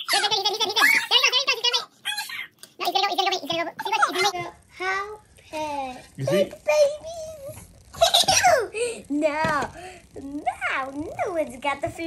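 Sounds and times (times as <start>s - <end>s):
child squealing and giggling: 0.0s - 2.6s.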